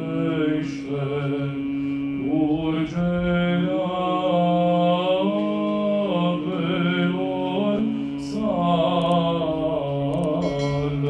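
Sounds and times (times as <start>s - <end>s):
voices chanting slow held notes: 0.0s - 11.0s.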